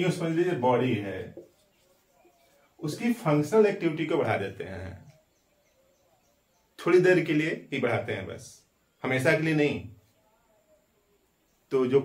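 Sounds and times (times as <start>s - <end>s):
man lecturing: 0.0s - 1.4s, 2.8s - 5.1s, 6.8s - 10.0s, 11.7s - 12.0s.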